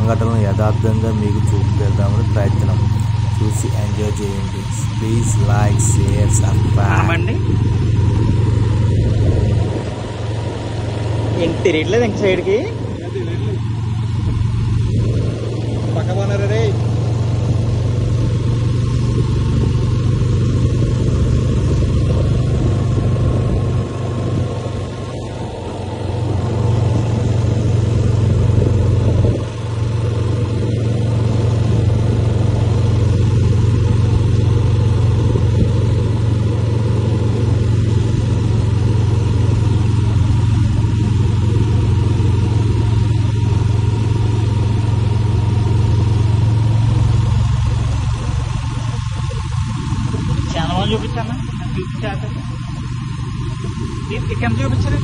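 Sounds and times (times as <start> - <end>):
road and wind noise: 0.0 - 55.0
vehicle engine drone: 0.0 - 55.0.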